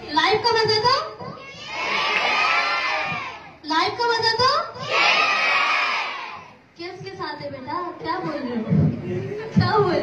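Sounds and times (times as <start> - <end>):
children shouting in unison: 1.4 - 3.6, 4.8 - 6.6.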